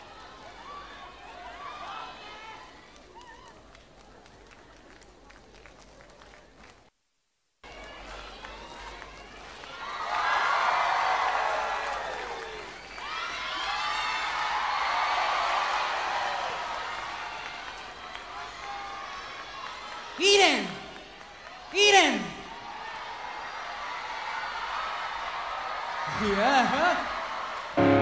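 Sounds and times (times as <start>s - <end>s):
crowd cheering and shouting: 7.6s - 28.0s.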